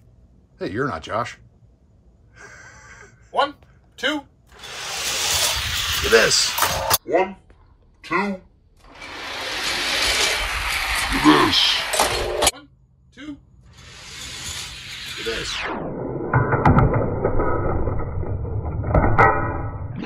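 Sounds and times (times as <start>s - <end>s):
toy cars rolling on plastic track: 4.5s - 7.0s, 8.8s - 12.5s, 13.7s - 15.7s
clicks and clatter: 8.8s - 12.5s.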